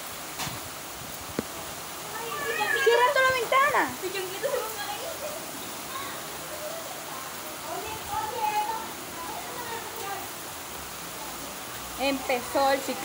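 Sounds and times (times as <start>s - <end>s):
heavy rain pouring: 0.0s - 13.0s
faint voices talking: 1.8s - 13.0s.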